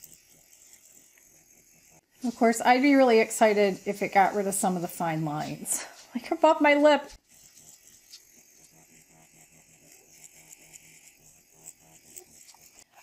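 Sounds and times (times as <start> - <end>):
microneedling pen buzzing: 0.0 - 13.0.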